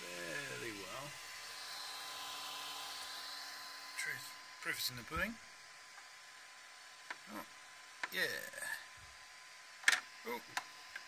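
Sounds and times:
cooling fans hissing: 0.0 - 11.0.

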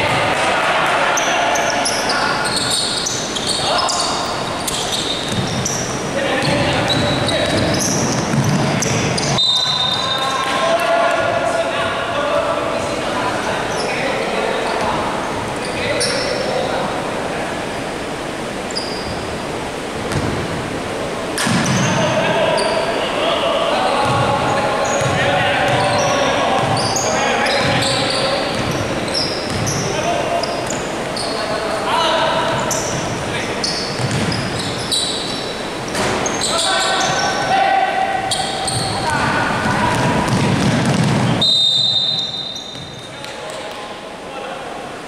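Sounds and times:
players calling out: 0.0 - 17.0, 21.6 - 43.7
sneaker squeaks: 1.1 - 10.6, 13.6 - 15.0, 15.6 - 16.6, 18.7 - 19.5, 21.4 - 23.0, 23.8 - 43.8
ball bouncing on wooden court: 5.2 - 9.4, 20.1 - 20.4, 24.0 - 24.4, 25.0 - 27.0, 28.5 - 28.9, 29.5 - 29.8, 34.0 - 34.8, 38.7 - 41.4, 42.1 - 43.1.

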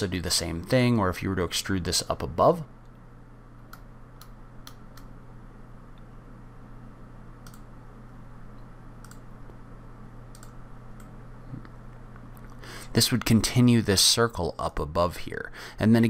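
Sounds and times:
low electrical hum: 0.0 - 16.0
computer mouse clicking: 3.7 - 5.1, 7.4 - 7.7, 9.0 - 9.3, 10.3 - 11.1.

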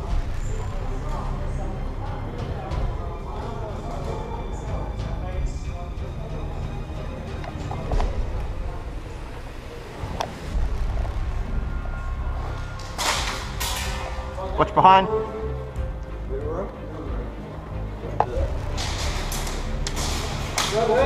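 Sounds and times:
low steady rumble: 4.8 - 12.9.

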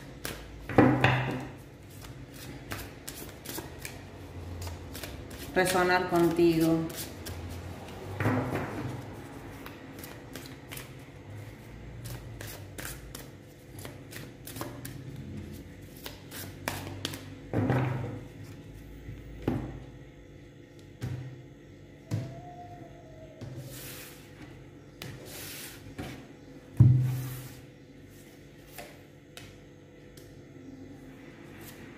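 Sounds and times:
cards being shuffled: 12.0 - 15.0.

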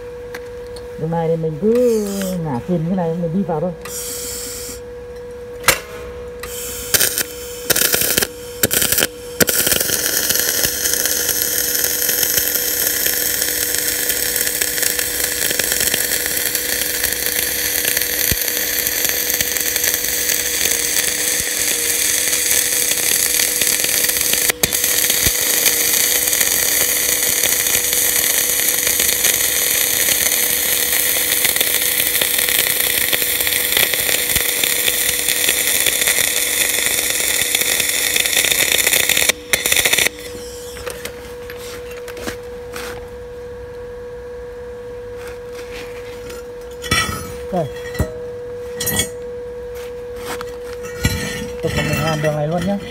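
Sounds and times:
two-tone hum: 0.0 - 52.9
welding arc crackling hiss: 1.8 - 2.5, 3.8 - 4.8, 6.4 - 41.9.

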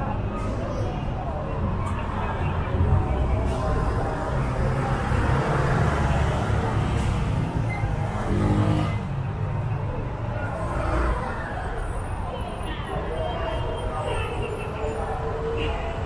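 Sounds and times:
road traffic: 0.0 - 16.0
voices of passers-by: 0.0 - 16.0.

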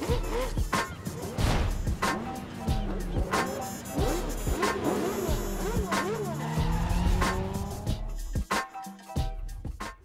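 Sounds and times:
sports car engines revving: 0.0 - 8.1
music with heavy beat: 0.0 - 10.0.

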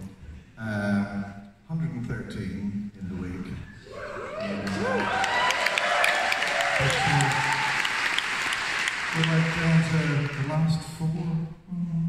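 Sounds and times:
audience applauding: 4.2 - 10.9.

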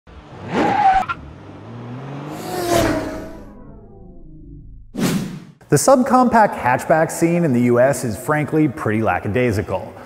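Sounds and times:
car engine sweeping past: 0.1 - 5.5.

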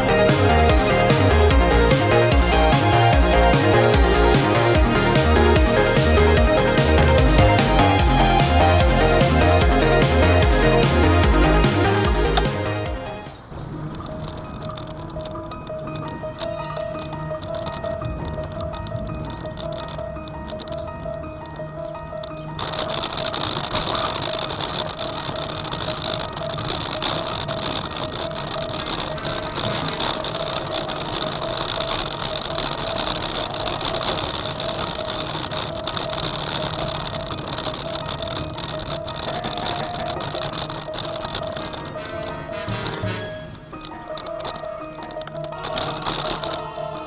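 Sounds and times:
background music: 0.0 - 47.0
bicycle rattling over paving stones: 12.0 - 47.0.

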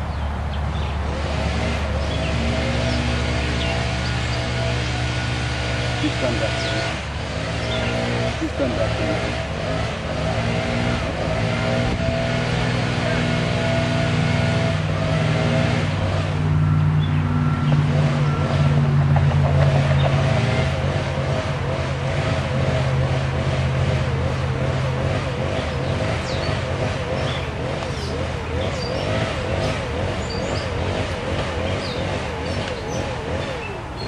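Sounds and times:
motor engine running: 0.0 - 34.0.

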